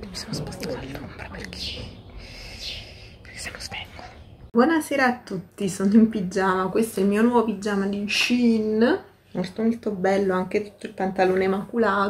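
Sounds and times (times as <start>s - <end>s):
woman half-whispering: 0.0s - 1.6s, 2.3s - 4.3s.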